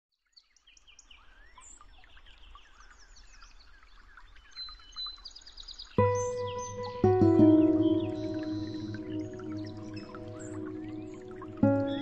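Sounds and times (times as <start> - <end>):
songbirds chirping and singing: 4.1 - 12.0.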